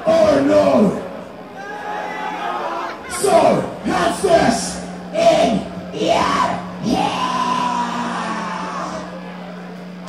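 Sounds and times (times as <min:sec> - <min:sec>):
amplified stage gear hum: 0:00.0 - 0:10.0
person yelling: 0:05.2 - 0:09.2.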